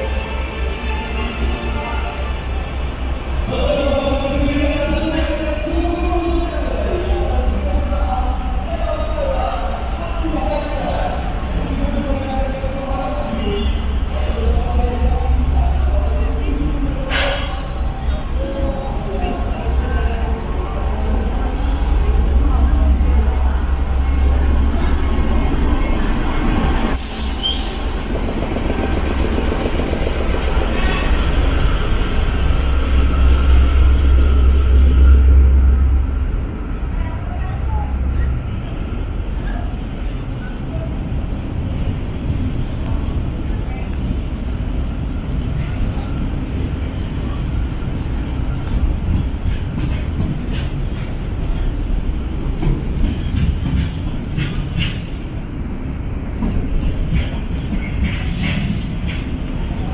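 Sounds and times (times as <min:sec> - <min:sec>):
train wheels rumbling on rail: 0:00.0 - 0:59.9
locomotive engine running: 0:17.8 - 0:39.9.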